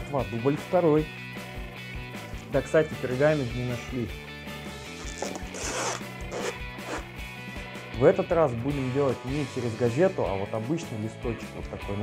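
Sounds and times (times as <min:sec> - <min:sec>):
background music with steady beat: 0:00.0 - 0:12.0
cling film crinkling: 0:04.8 - 0:07.0.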